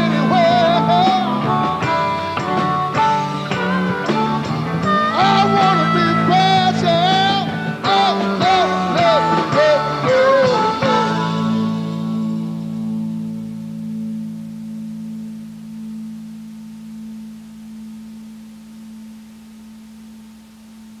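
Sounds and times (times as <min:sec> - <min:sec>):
rock band chord ringing: 0:00.0 - 0:21.0.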